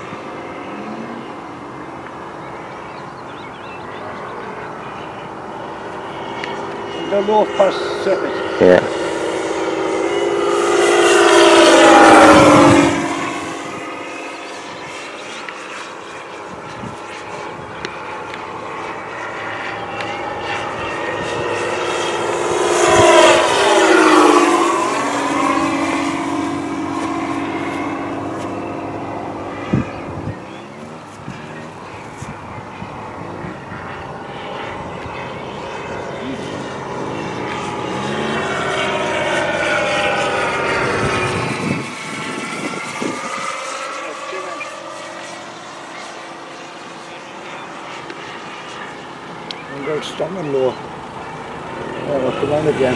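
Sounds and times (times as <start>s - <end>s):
model plane motor droning: 0.0s - 52.9s.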